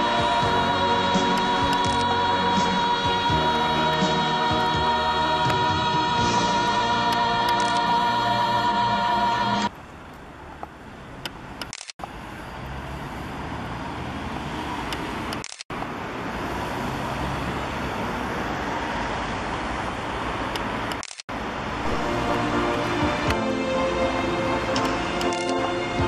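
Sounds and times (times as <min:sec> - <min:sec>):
music: 0:00.0 - 0:09.7, 0:21.9 - 0:26.0
cars passing: 0:00.0 - 0:26.0.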